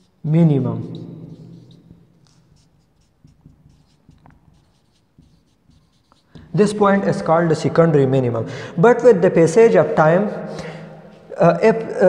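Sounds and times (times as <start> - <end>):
marker writing on whiteboard: 0.0 - 7.8, 9.6 - 12.0.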